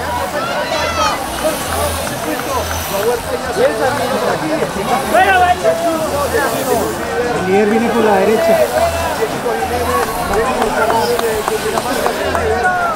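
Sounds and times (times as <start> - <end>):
crowd shouting and cheering: 0.0 - 12.9.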